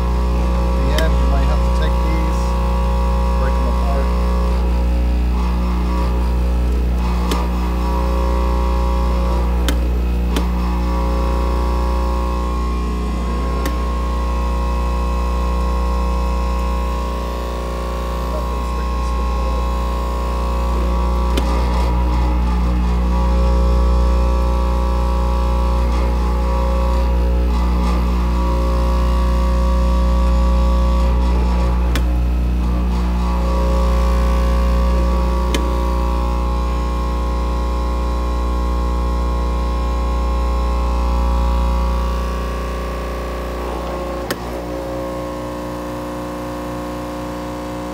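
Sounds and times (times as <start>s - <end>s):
machine hum: 0.0s - 47.9s.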